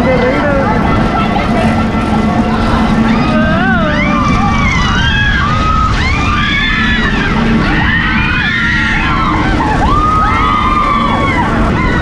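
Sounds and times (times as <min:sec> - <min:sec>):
ride machinery rumbling: 0:00.0 - 0:12.0
riders shrieking: 0:03.0 - 0:12.0.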